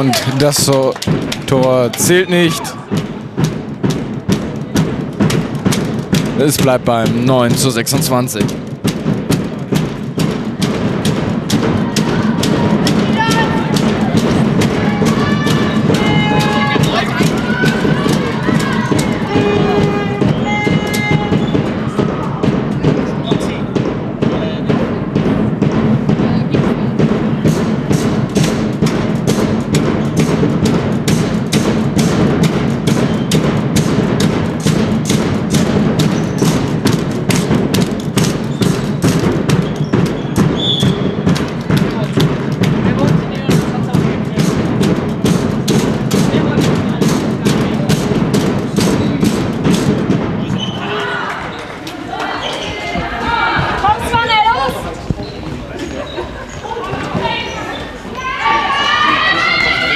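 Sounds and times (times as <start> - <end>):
drum beating fast: 0.0 - 55.7
crowd voices in hall: 0.0 - 59.9.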